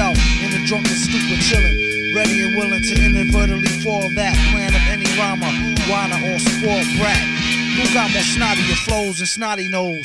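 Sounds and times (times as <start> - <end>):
hip hop beat with deep bass: 0.0 - 10.0
rapping over a beat: 0.0 - 10.0.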